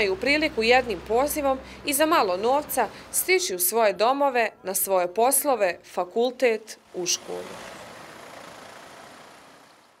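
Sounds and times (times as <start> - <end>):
street noise: 0.0 - 10.0
traffic: 0.0 - 10.0.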